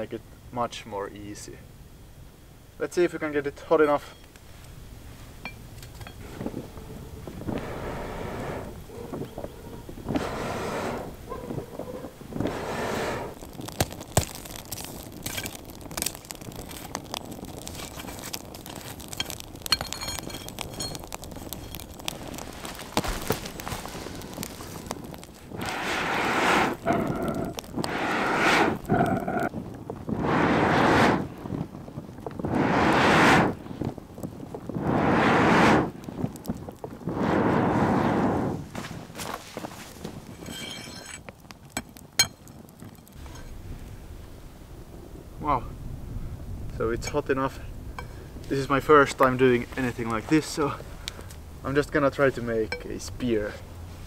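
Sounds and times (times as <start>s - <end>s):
wood fire crackling: 0.0s - 54.0s
bellows whooshing air: 6.2s - 13.4s, 22.2s - 34.0s, 34.6s - 36.3s, 37.0s - 39.2s.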